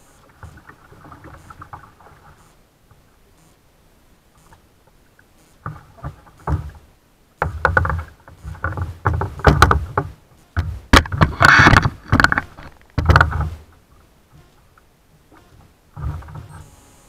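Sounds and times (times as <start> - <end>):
knocks and scraping on kayak hull: 5.6 - 16.6.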